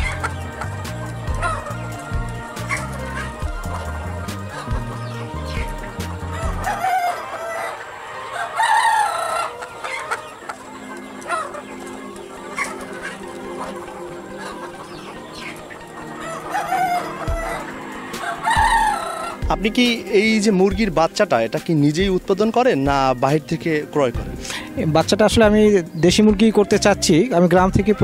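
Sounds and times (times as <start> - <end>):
background music: 0.0 - 28.0
chickens clucking: 0.0 - 28.0.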